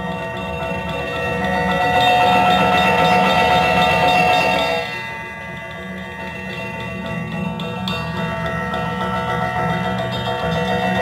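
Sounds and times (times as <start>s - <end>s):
gamelan ensemble playing: 0.0s - 11.0s.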